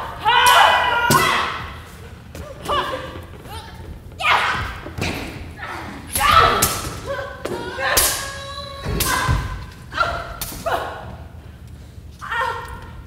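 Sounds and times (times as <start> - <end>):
fighters shouting: 0.0 - 5.0, 5.6 - 11.2
swords clashing: 6.1 - 7.2.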